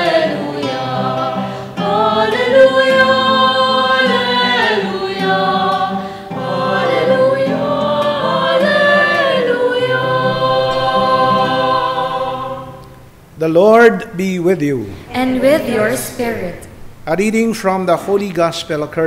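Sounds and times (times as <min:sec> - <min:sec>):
youth choir singing: 0:00.0 - 0:13.1, 0:14.8 - 0:16.9
acoustic guitar: 0:00.0 - 0:19.0.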